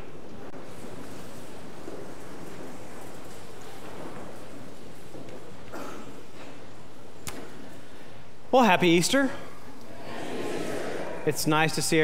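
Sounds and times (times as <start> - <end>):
congregation rustling and shuffling: 0.0 - 12.0.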